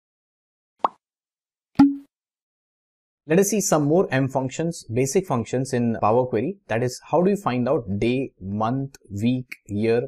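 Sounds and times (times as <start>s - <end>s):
sharp pop sound effect: 1.8s - 2.1s.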